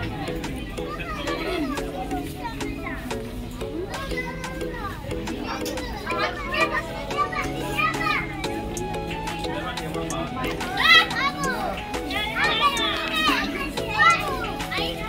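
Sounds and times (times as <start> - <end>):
background music with held chords: 0.0 - 15.0
children calling and chattering: 0.0 - 15.0.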